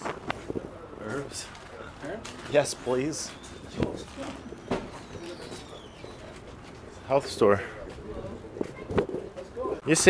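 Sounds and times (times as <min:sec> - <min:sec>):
low outdoor background noise: 0:00.0 - 0:10.0.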